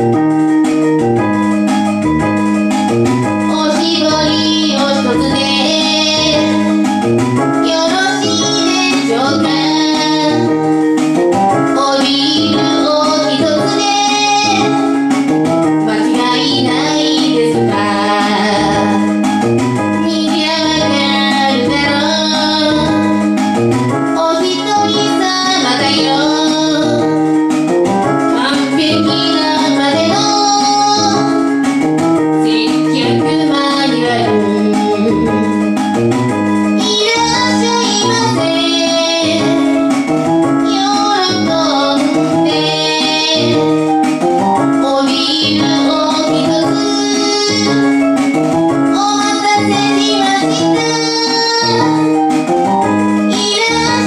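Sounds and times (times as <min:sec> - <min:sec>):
instrumental accompaniment: 0:00.0 - 0:54.0
keyboard chords: 0:00.0 - 0:54.0
woman singing into a microphone: 0:03.5 - 0:07.0, 0:07.6 - 0:10.7, 0:11.6 - 0:15.1, 0:15.8 - 0:19.3, 0:20.0 - 0:23.3, 0:24.0 - 0:27.2, 0:28.2 - 0:31.6, 0:32.4 - 0:35.7, 0:36.8 - 0:40.0, 0:40.6 - 0:43.8, 0:44.6 - 0:48.0, 0:48.9 - 0:52.4, 0:53.3 - 0:54.0.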